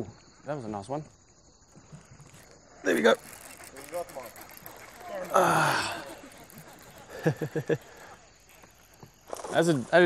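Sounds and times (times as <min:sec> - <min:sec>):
high-pitched insect chirring: 0:00.0 - 0:10.0.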